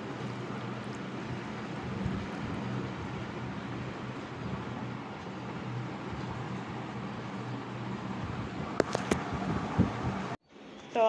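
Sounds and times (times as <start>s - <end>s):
background hum and hiss: 0.0s - 11.0s.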